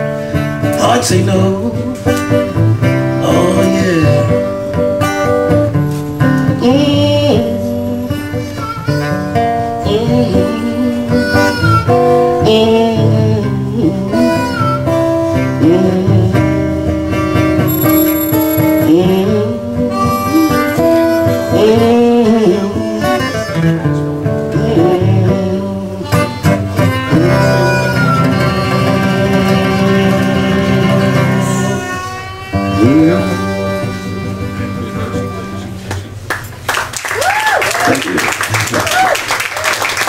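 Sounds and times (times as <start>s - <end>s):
acoustic guitar accompaniment: 0.0s - 36.7s
blues harmonica bending notes: 2.6s - 13.3s, 16.9s - 24.2s, 25.1s - 35.9s.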